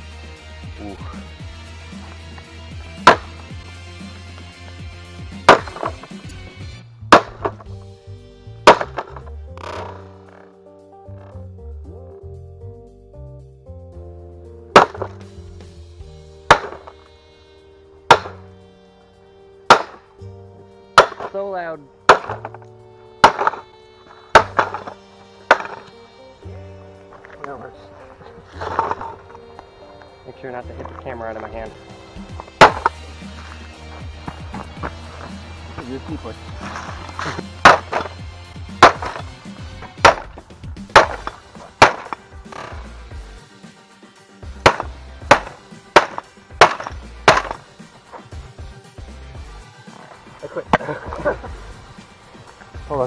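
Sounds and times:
background music with sustained tones: 0.0s - 53.0s
boot stomps cracking plastic: 2.0s - 3.7s, 5.3s - 6.2s, 7.1s - 7.8s, 8.6s - 10.4s, 14.8s - 15.4s, 16.5s - 17.1s, 18.1s - 18.5s, 22.1s - 23.7s, 24.4s - 26.0s, 32.2s - 43.0s, 44.5s - 48.5s
hammer smashing plastic casing: 14.8s - 15.2s.

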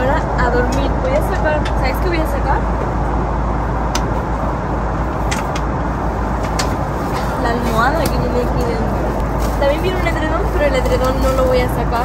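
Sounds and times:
airliner cabin rumble: 0.0s - 12.0s.

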